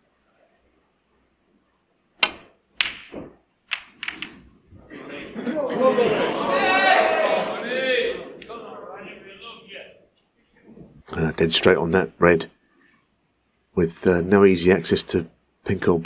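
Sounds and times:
cue striking ball: 0:02.2 - 0:04.4
snooker balls clicking: 0:02.2 - 0:04.7
crowd murmuring: 0:04.8 - 0:09.9.

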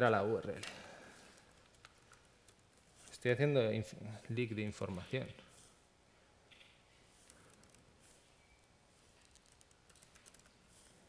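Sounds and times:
faint laptop keyboard typing: 0:01.2 - 0:03.1, 0:06.5 - 0:11.0.

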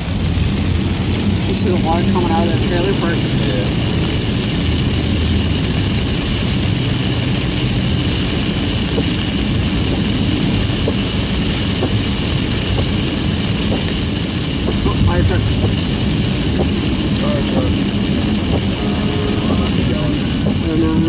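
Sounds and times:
car engine and tyre rumble: 0:00.0 - 0:21.0
rain and spray hissing on car: 0:00.0 - 0:21.0.

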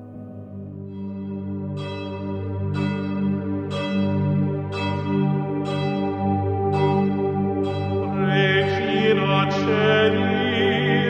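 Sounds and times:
low musical drone: 0:00.0 - 0:11.0
church bell tolling: 0:01.8 - 0:11.0.

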